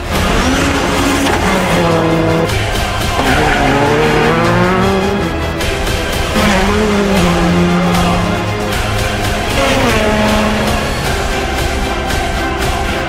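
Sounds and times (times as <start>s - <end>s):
music track: 0.0s - 13.0s
rally cars at full throttle: 0.0s - 13.0s.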